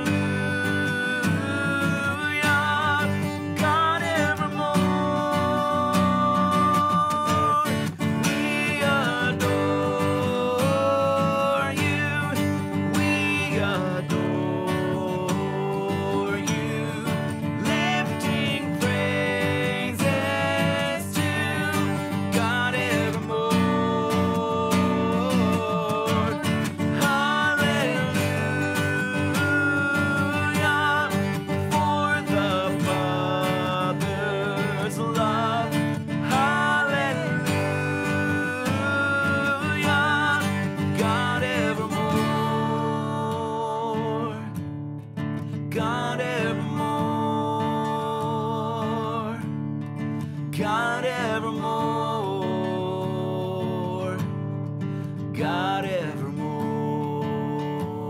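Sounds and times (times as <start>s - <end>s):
man and woman singing: 0.0s - 44.6s, 45.7s - 49.5s, 50.6s - 54.4s, 55.4s - 58.0s
strummed acoustic guitar: 0.0s - 58.0s.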